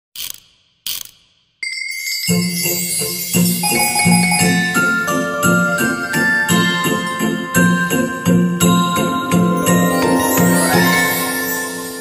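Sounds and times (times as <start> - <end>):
bright ringing chime: 1.6 - 6.3, 9.6 - 12.0
festive intro music: 1.6 - 12.0.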